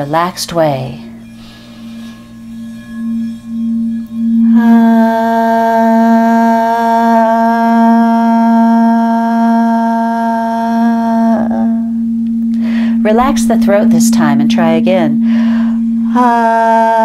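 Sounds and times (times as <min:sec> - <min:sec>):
singing bowl ringing: 0:00.0 - 0:17.0
woman singing long ah: 0:04.4 - 0:17.0.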